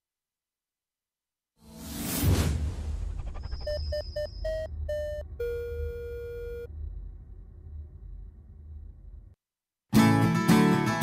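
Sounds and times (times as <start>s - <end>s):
whoosh: 1.6s - 4.6s
low rumble: 2.1s - 9.4s
long low beep: 3.2s - 7.9s
short electronic beeps: 3.4s - 6.7s.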